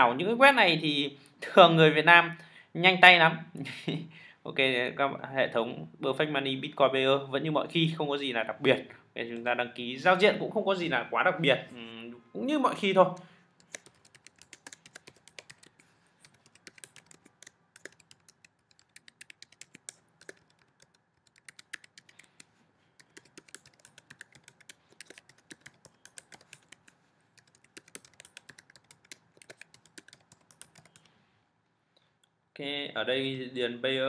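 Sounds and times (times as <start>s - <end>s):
computer keyboard typing: 13.6s - 31.1s.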